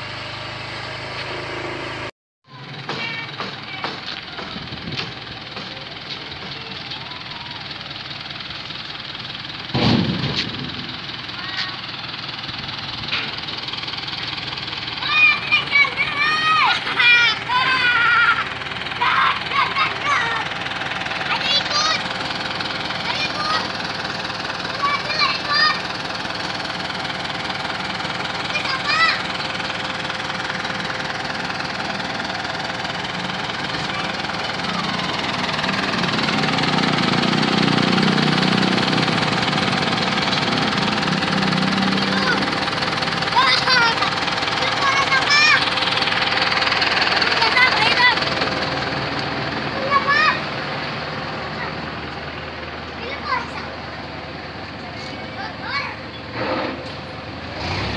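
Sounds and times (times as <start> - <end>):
engine idling: 0.0 - 57.9
children's voices: 2.5 - 4.8, 5.5 - 8.0, 11.2 - 12.1, 14.9 - 37.3, 38.0 - 56.9.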